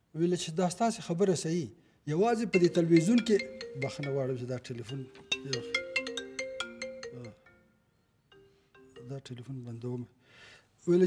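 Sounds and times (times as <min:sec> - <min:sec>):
mobile phone ringtone: 0:02.5 - 0:07.7, 0:08.4 - 0:09.4.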